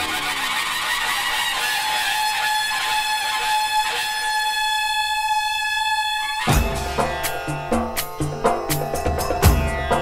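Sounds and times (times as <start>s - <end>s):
conch shell blown: 0.0s - 6.8s.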